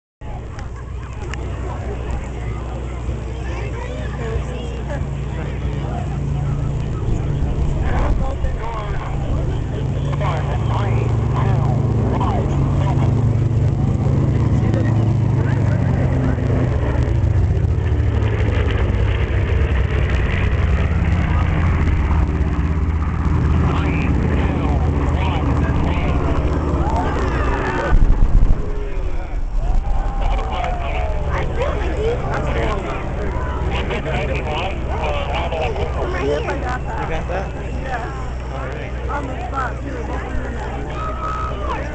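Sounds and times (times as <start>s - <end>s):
propeller planes droning past: 0.2s - 41.9s.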